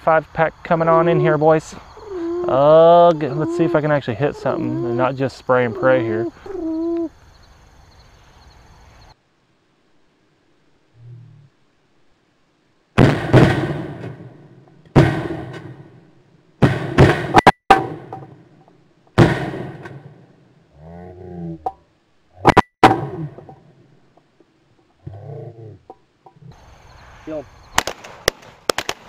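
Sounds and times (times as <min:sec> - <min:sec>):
shotgun shots: 0:13.0 - 0:14.4, 0:15.0 - 0:15.8, 0:16.6 - 0:18.1, 0:19.2 - 0:20.1, 0:27.8 - 0:29.0.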